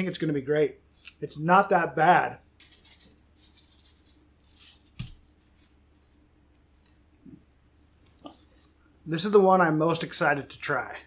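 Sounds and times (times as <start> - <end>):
seasoning shaker rattle: 2.6 - 4.8.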